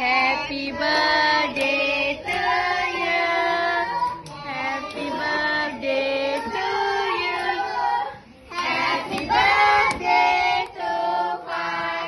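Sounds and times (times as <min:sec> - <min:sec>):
children and women singing: 0:00.0 - 0:12.0.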